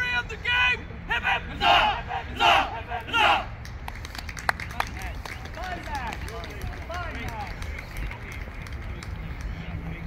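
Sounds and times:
men shouting together: 1.1s - 3.5s
sharp claps: 3.6s - 9.7s.

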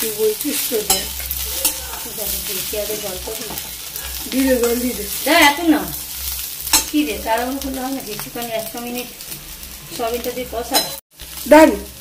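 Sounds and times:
food sizzling in oil: 0.0s - 12.0s
metal spatula scraping pan: 0.5s - 7.3s.

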